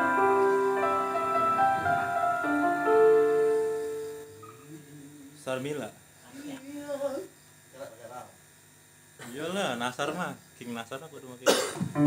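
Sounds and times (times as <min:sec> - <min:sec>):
electrical buzz from sound system: 0:00.0 - 0:12.0.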